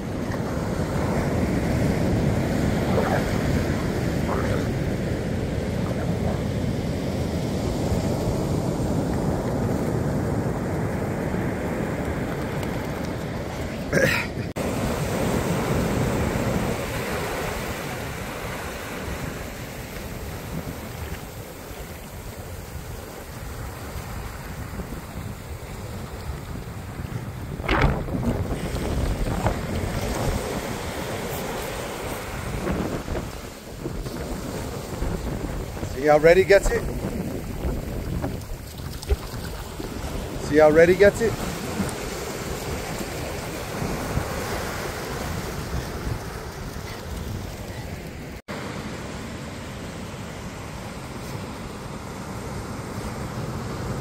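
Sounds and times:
ocean surf washing up beach: 0:00.0 - 0:54.0
wind buffeting microphone: 0:20.2 - 0:48.1.

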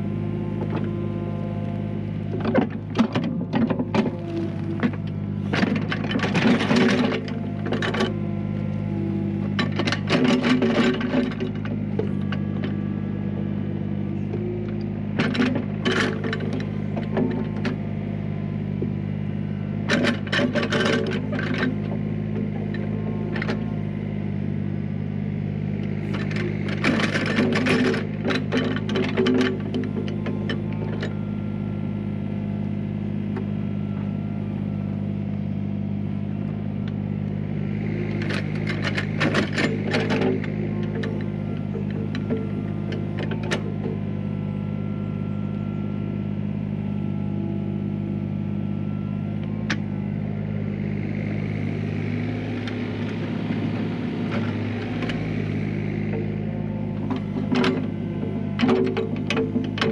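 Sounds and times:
excavator diesel engine running: 0:00.0 - 0:59.9.

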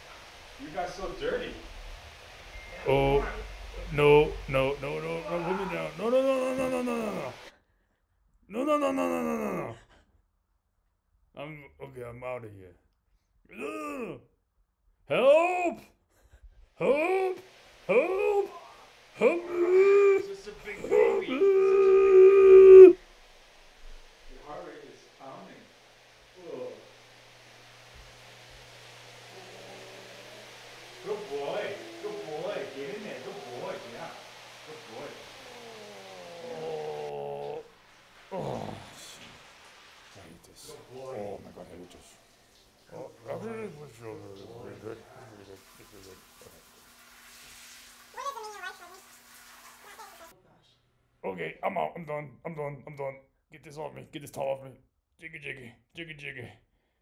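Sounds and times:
running shower hiss: 0:00.0 - 0:07.5, 0:08.5 - 0:09.7, 0:16.7 - 0:50.4
dog howling: 0:02.7 - 0:07.5, 0:16.8 - 0:23.0, 0:29.0 - 0:39.2.

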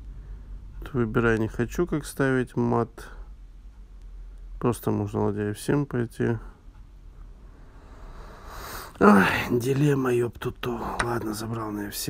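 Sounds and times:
breath drawn in: 0:07.6 - 0:09.0.

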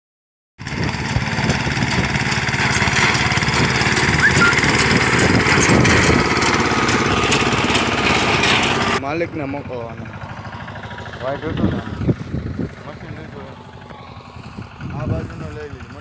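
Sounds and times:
cutter mechanical clatter: 0:00.6 - 0:09.0
small engine drone: 0:00.6 - 0:16.0.

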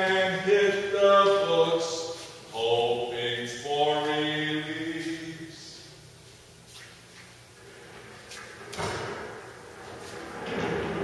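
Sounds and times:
man singing long notes: 0:00.0 - 0:05.8.

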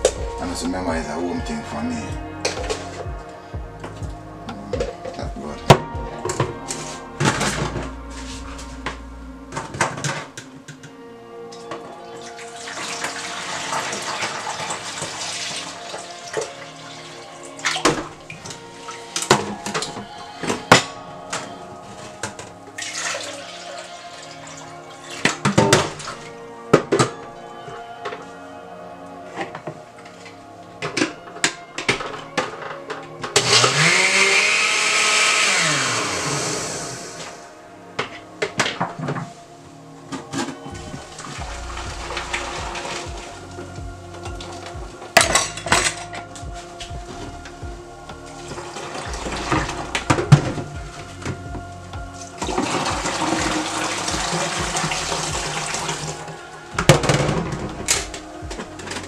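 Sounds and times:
background music: 0:00.0 - 0:59.0
blender motor whining: 0:33.4 - 0:37.4
juice being poured: 0:52.4 - 0:56.4.

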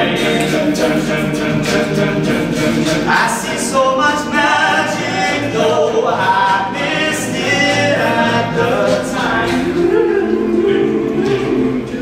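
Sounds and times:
male group singing in harmony: 0:00.0 - 0:12.0.

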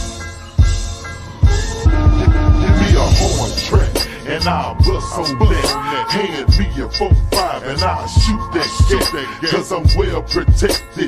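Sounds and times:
heavy bass kicks: 0:00.0 - 0:05.8, 0:06.5 - 0:07.5, 0:08.1 - 0:09.2, 0:09.9 - 0:10.9
slowed rap vocal: 0:01.5 - 0:11.0
hi-hat ticks: 0:04.8 - 0:11.0.

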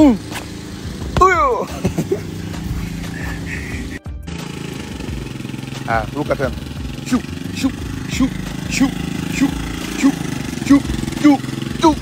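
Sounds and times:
person shouting: 0:01.1 - 0:01.7, 0:07.0 - 0:12.0.

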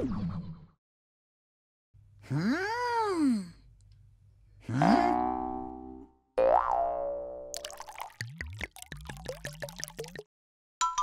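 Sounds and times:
cartoon boing: 0:04.8 - 0:07.6.

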